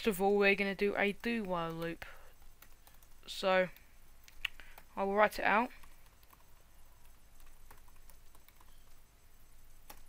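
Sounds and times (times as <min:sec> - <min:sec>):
faint keyboard typing: 0:00.0 - 0:09.1, 0:09.8 - 0:10.0.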